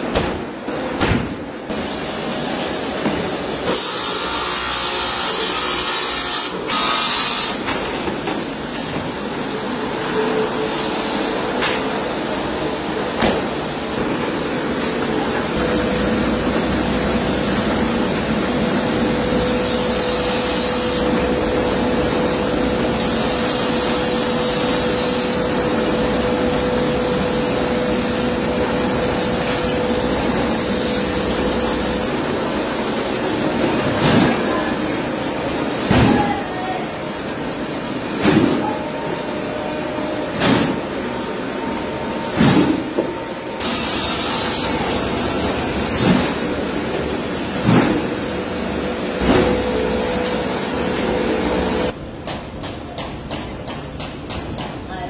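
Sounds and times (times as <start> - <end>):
factory machinery humming: 0.0 - 55.0.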